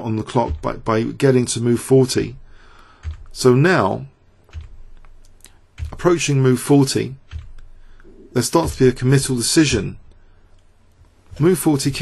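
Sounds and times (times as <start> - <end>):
computer keys clicking: 3.0 - 3.4, 4.5 - 6.2, 7.2 - 8.1.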